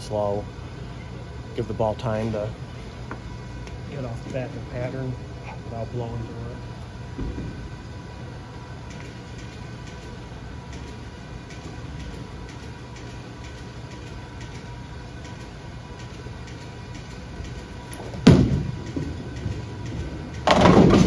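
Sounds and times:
bowling balls rolling on lanes: 17.3 - 21.0
bowling ball thud on lane: 20.5 - 21.0.

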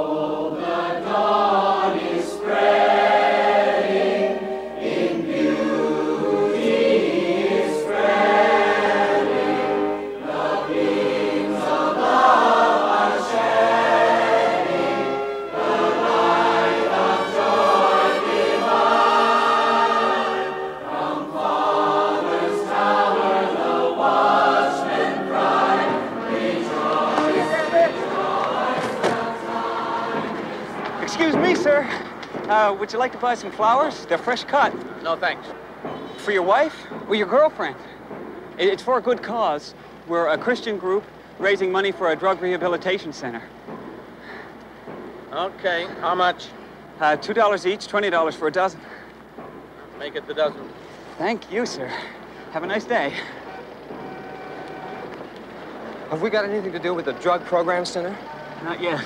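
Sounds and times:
choir singing: 0.0 - 34.2.

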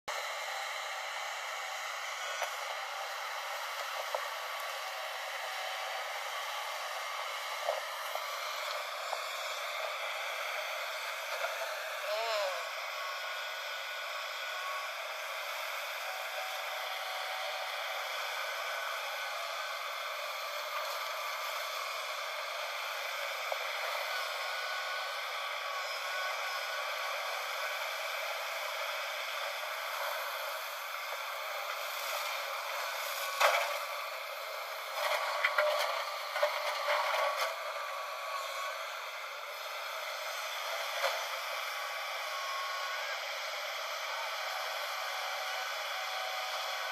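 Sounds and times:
excavator engine and hydraulic drone: 0.1 - 46.9.

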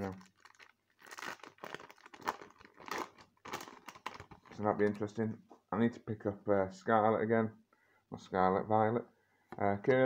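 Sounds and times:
foil pack crinkling: 0.0 - 5.1.

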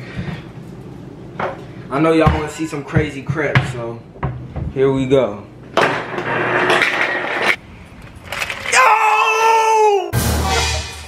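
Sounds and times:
young man yelling: 8.7 - 10.2.

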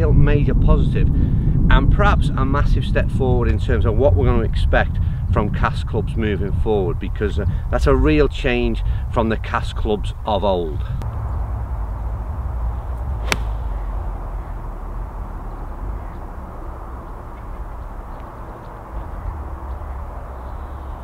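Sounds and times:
golf club striking ball: 13.2 - 13.9.

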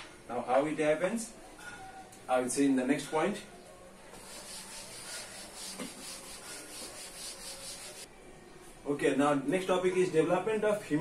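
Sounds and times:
duster rubbing on chalkboard: 4.2 - 8.1.

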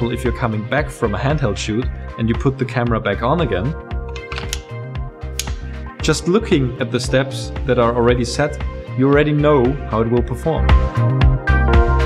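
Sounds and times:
background music: 0.0 - 12.0
camera plate latching clicks: 4.1 - 4.7.

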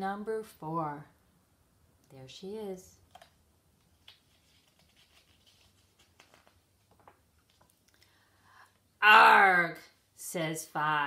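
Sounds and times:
book page rustling and turning: 3.1 - 8.0.

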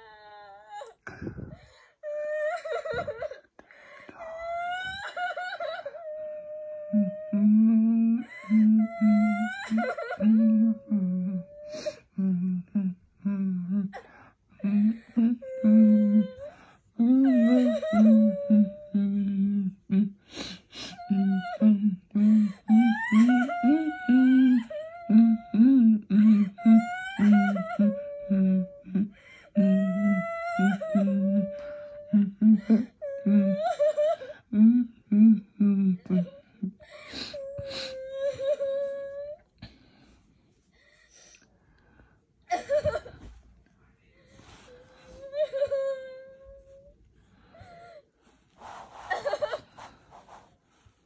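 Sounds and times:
woman crying through laptop speakers: 4.2 - 12.0, 14.6 - 19.3, 20.8 - 29.0.

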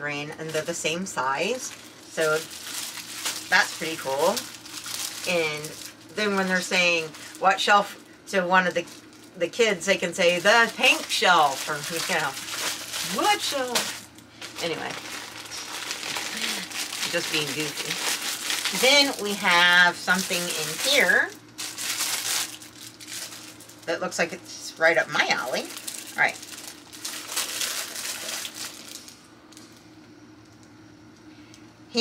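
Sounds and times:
plastic bag crinkling: 0.4 - 30.7.

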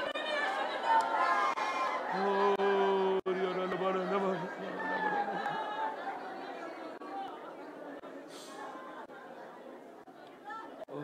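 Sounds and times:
overlapping voices in a hall: 0.0 - 11.0.

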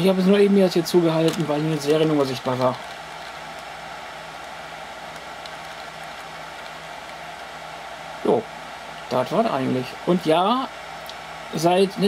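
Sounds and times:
low constant hum: 0.0 - 12.0
server cooling fans whirring: 0.0 - 12.0.

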